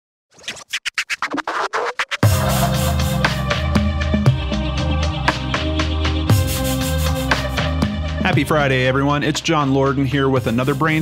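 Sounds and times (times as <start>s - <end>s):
turntable record scratching: 0.3s - 3.7s.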